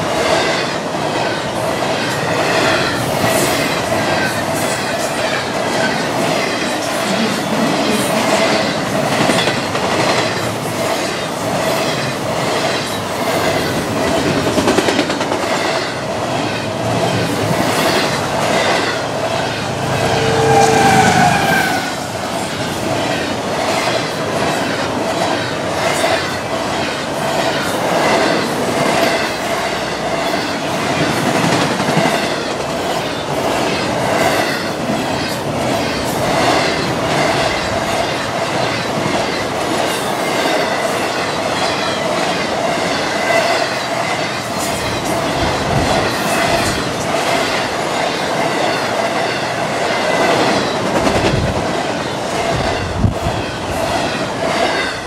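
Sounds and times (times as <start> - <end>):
freight train wheel and rail noise: 0.0 - 55.0
ringing tone from wheels: 18.7 - 22.4.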